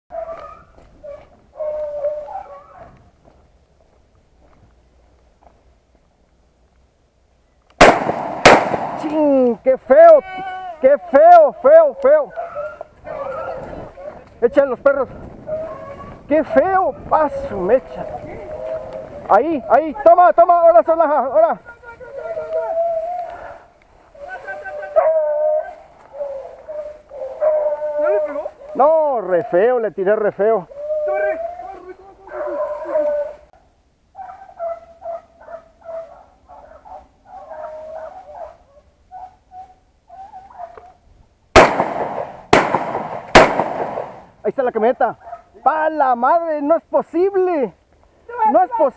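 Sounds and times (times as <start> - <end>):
hounds baying: 0.1 - 3.0, 10.8 - 21.4, 22.0 - 41.0, 45.1 - 45.8.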